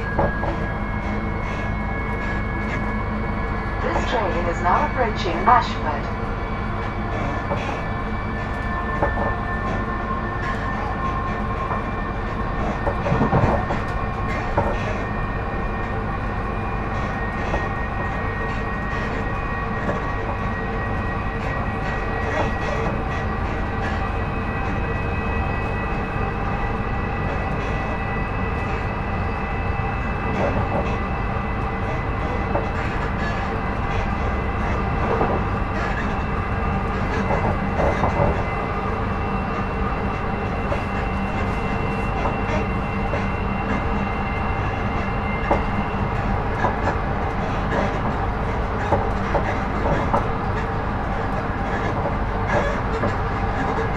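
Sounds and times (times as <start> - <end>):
electric traction whine: 0.0 - 53.9
train wheels rumbling on rail: 0.0 - 53.9.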